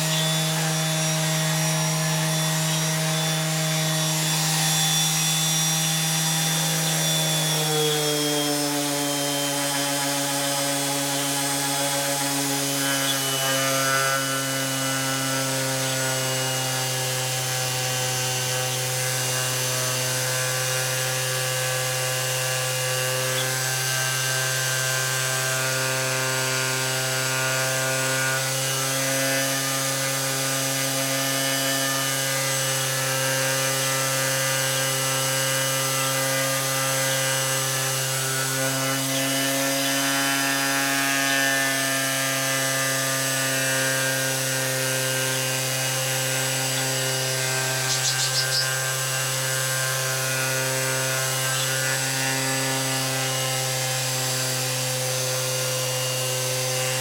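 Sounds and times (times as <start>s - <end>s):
orbital sander sanding wood: 0.0s - 57.0s.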